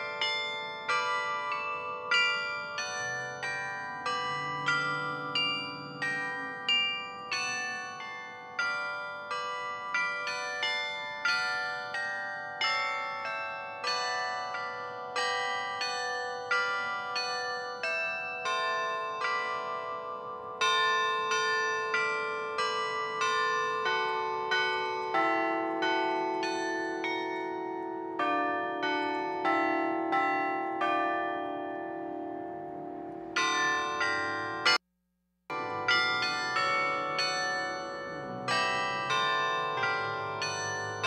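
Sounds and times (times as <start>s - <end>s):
carillon bells playing melody: 0.0s - 34.8s, 35.5s - 41.0s.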